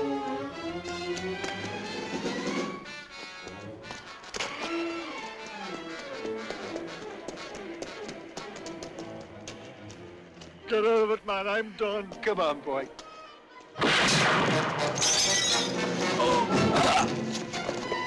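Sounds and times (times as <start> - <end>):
tense orchestral strings: 0.0 - 11.8
running footsteps on wet pavement: 0.5 - 13.0.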